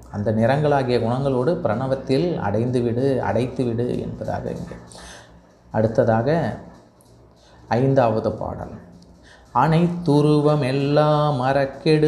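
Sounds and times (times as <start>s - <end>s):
man chanting: 0.1s - 4.9s, 9.5s - 12.0s.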